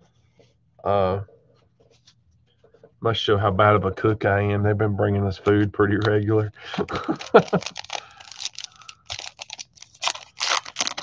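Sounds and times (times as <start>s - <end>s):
card pack wrapper tearing and crinkling: 6.8s - 11.0s.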